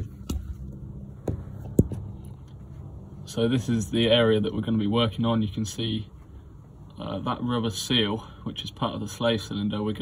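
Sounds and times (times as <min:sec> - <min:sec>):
camera handling knocks and bumps: 0:00.0 - 0:02.2
steady low hum: 0:00.0 - 0:10.0.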